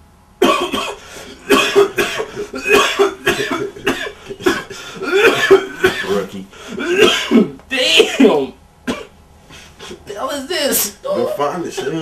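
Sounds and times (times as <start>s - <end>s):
man coughing harshly: 0.4s - 10.0s, 11.4s - 12.0s.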